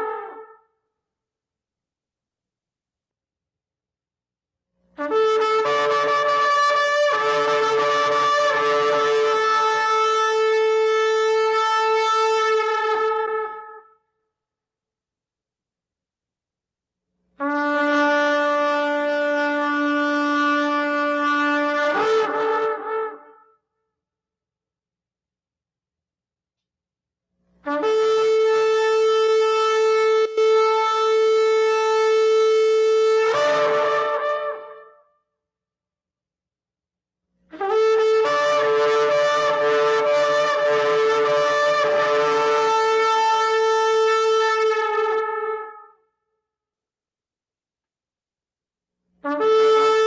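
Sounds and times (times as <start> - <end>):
ram's horn blown: 5.0 - 13.7, 33.1 - 34.9
shofar long blast: 5.0 - 13.7, 27.7 - 34.9, 37.5 - 45.9.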